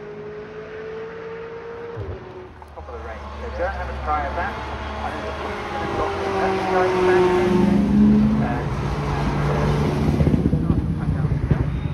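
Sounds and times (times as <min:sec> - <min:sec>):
sports car driving past: 0:00.0 - 0:11.9
wind buffeting microphone: 0:09.3 - 0:11.9.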